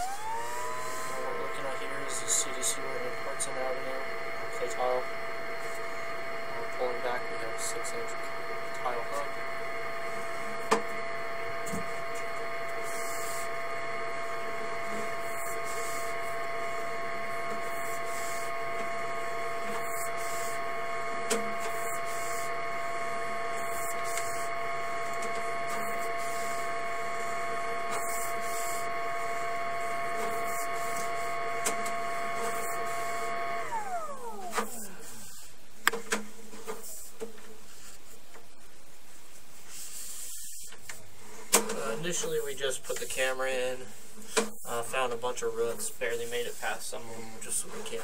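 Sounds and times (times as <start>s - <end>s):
electric motor whining: 0.0s - 35.9s.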